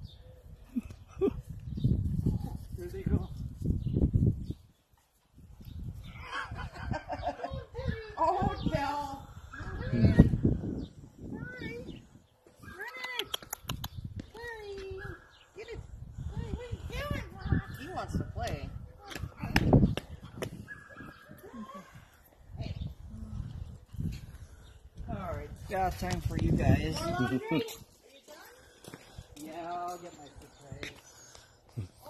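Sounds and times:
dogs yelping: 20.3 - 22.1.

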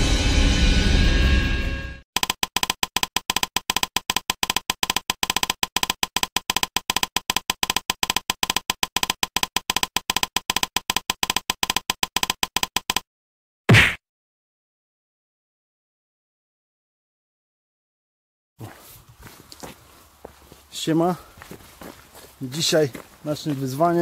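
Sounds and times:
keystroke clicks: 2.2 - 13.0.

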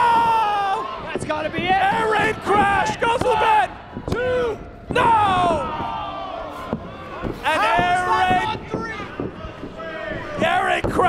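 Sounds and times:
loud drawn-out shouting: 0.0 - 11.0.

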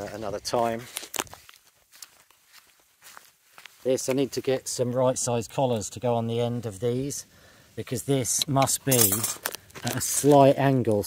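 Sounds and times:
footsteps on grass: 0.0 - 5.0.

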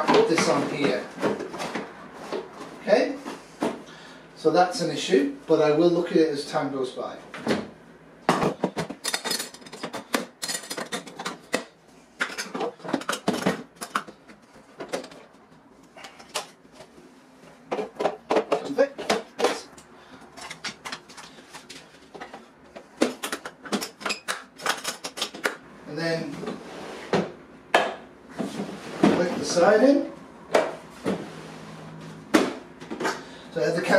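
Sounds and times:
plastic toolbox parts clattering: 8.3 - 15.3, 17.7 - 25.6.

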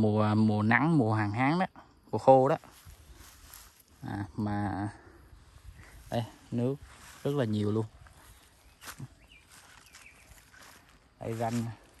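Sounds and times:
outdoor field ambience: 0.0 - 12.0
soft footsteps: 2.6 - 4.0, 5.4 - 12.0
short bird chirps: 8.2 - 10.8.

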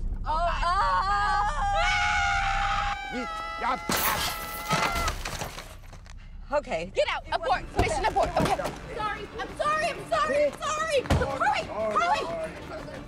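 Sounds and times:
women screaming: 0.6 - 5.2.

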